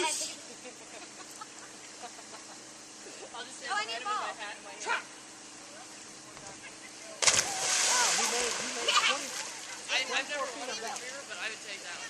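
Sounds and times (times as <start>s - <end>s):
dog splashing into water: 7.2s - 9.8s
splashing water: 7.2s - 10.6s.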